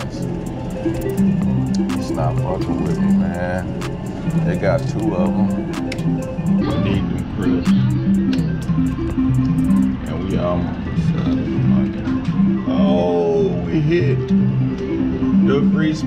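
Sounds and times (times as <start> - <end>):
plucked bass and guitar music: 0.0 - 16.0
voice in music: 0.0 - 16.0.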